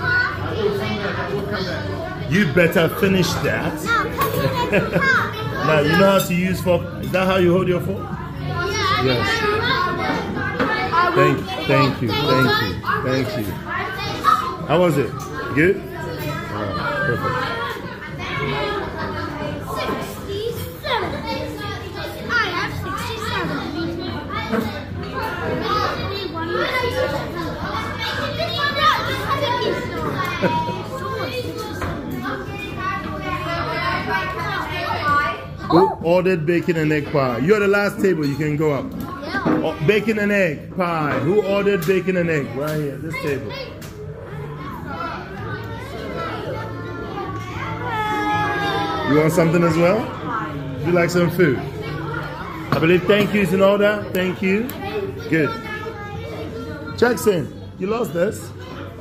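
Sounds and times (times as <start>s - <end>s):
children chattering and calling out: 0.0s - 59.0s.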